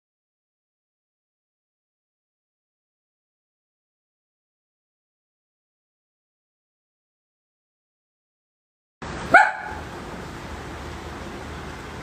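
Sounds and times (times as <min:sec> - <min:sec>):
dog barking high-pitched: 0:09.3 - 0:09.9.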